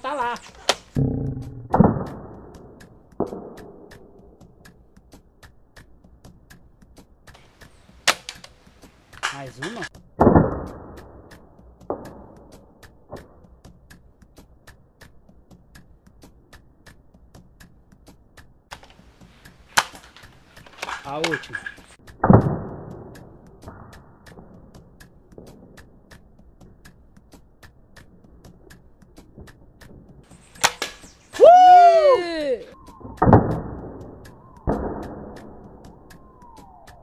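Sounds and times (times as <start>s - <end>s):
toy blaster firing snap: 30.6s - 31.2s.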